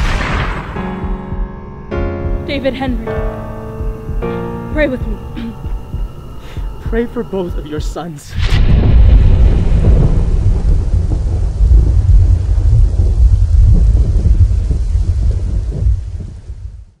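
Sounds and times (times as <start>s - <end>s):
rolling thunder: 0.0s - 7.6s, 8.3s - 17.0s
steady rain: 2.3s - 17.0s.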